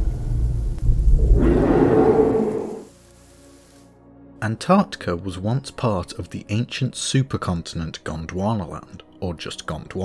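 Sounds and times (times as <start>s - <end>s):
deep loud rumble: 0.0s - 2.9s.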